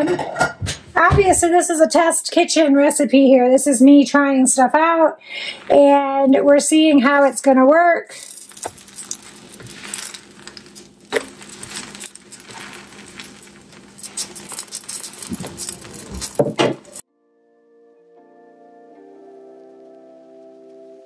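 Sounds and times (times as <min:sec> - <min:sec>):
soft instrumental music: 0:17.1 - 0:21.0.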